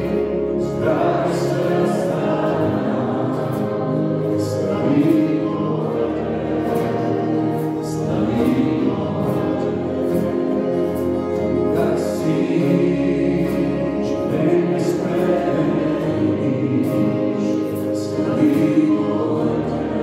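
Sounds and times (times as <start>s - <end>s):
keyboard: 0.0s - 20.0s
strummed acoustic guitars: 0.0s - 20.0s
voices singing together: 0.0s - 20.0s.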